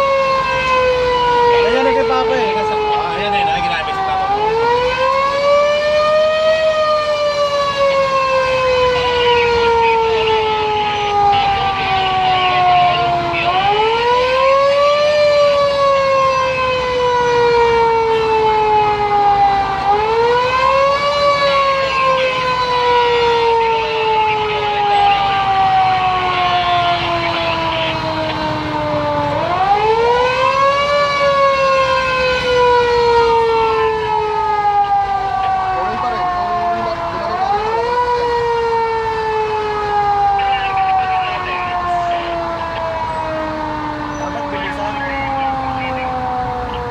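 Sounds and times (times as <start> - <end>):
fire truck siren wailing: 0.0 - 46.9.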